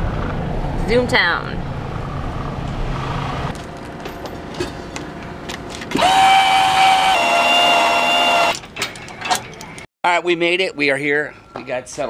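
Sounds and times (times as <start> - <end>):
small electric motor whining: 5.9 - 8.6.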